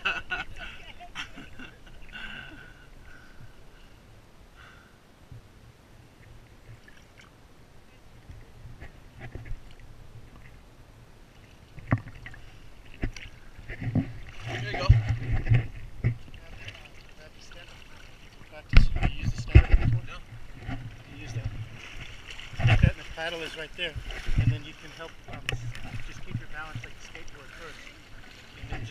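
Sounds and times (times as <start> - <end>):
sea water splashing: 6.1 - 10.6, 11.2 - 28.9.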